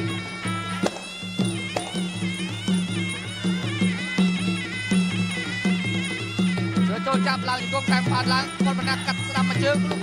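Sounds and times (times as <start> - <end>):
drums beating: 0.0 - 10.0.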